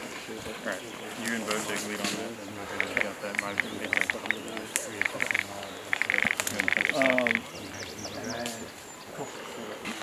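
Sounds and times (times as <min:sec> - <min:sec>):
men talking low: 0:00.0 - 0:10.0
bird chirping: 0:00.3 - 0:09.8.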